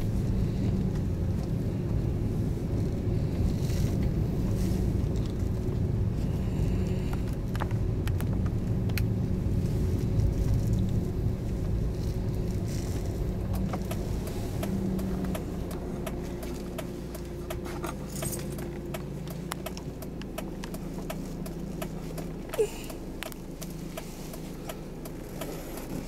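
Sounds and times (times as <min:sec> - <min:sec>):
car engine and road noise: 0:00.0 - 0:26.0
light clicks and rattles: 0:12.5 - 0:26.0.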